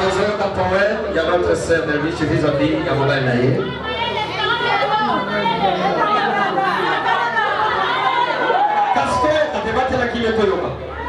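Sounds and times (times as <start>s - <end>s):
several voices talking: 0.0s - 11.0s.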